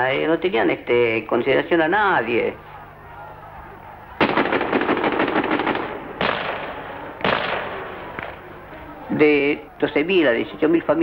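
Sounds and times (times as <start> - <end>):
faint low hum: 0.0 - 11.0
loud crackling bursts: 4.2 - 8.5.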